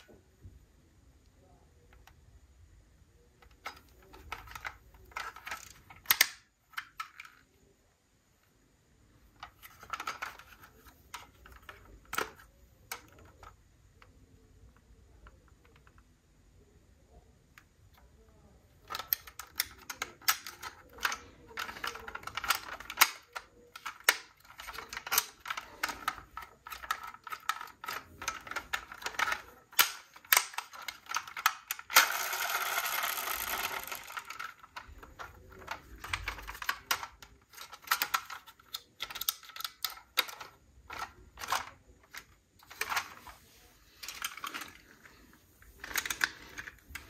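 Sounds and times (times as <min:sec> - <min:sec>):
model truck parts clicking: 0:03.2 - 0:07.6, 0:09.3 - 0:16.2, 0:17.5 - 0:47.0
rustling and scraping: 0:40.2 - 0:47.0.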